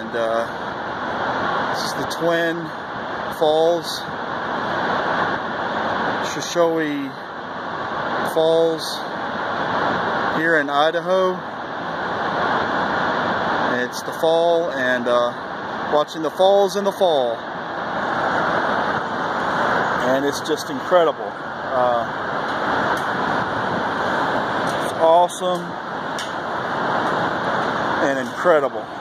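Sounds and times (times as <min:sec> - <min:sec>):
waterfall rushing: 0:00.0 - 0:29.0
person speaking: 0:20.0 - 0:22.1, 0:24.8 - 0:25.8, 0:28.0 - 0:29.0.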